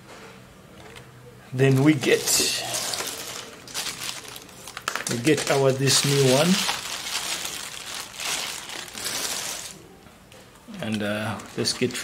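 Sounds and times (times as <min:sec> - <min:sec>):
plastic packaging crinkling: 0:01.6 - 0:09.8, 0:10.8 - 0:12.0.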